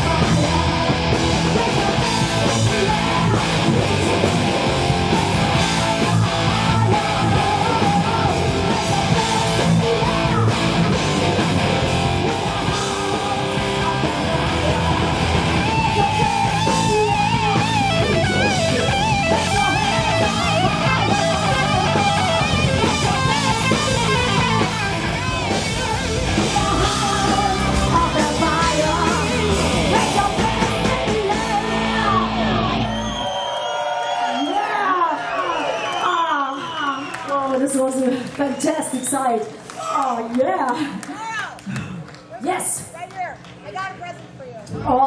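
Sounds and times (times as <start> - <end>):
wavering lead guitar melody: 0.0 - 33.0
heavy metal band playing live: 0.0 - 33.2.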